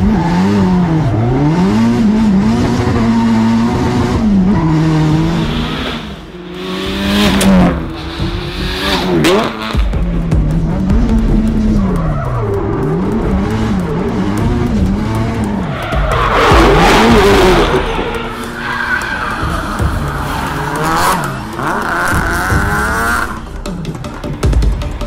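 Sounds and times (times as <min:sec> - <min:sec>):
tyres skidding and squealing: 0:00.0 - 0:24.4
car engine revving: 0:00.0 - 0:24.5.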